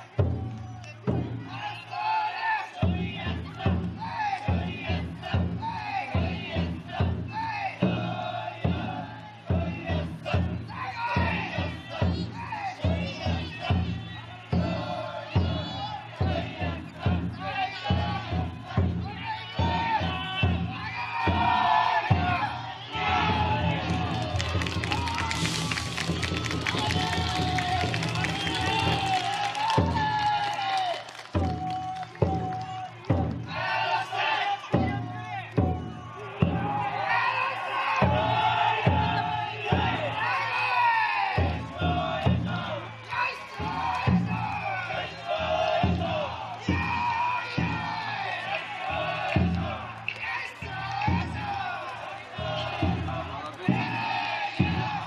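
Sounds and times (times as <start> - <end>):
crowd shouting a chant: 0.0 - 55.0.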